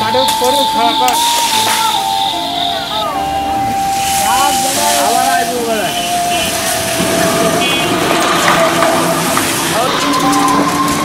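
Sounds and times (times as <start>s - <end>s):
busy outdoor background noise: 0.0s - 11.0s
people talking and calling: 0.0s - 11.0s.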